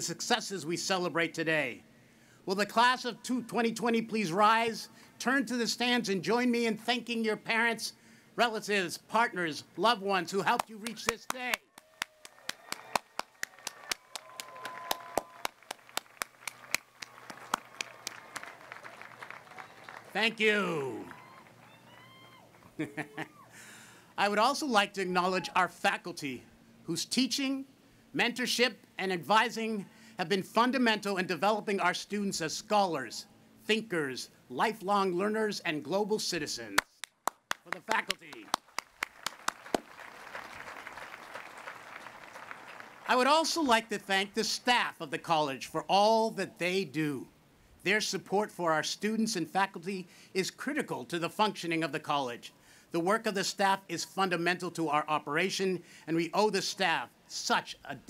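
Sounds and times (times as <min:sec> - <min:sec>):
hands clapping close: 0:10.6 - 0:20.1, 0:36.8 - 0:43.0
crowd cheering: 0:10.9 - 0:23.6, 0:37.6 - 0:43.7
crowd applause: 0:11.7 - 0:22.7, 0:37.6 - 0:43.2.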